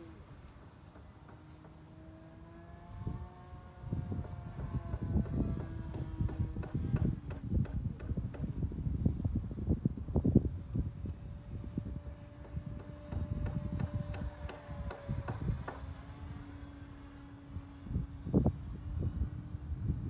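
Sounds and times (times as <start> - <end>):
model plane motor whine: 0.0 - 7.2, 10.6 - 20.0
wind buffeting microphone: 0.0 - 20.0.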